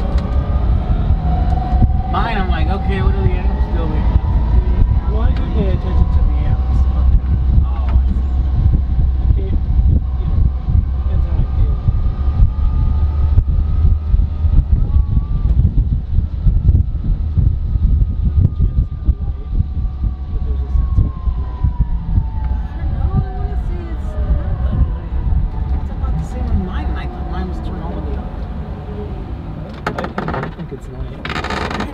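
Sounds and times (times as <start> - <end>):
vehicle road rumble: 0.0 - 31.9
body rattles: 29.8 - 31.9.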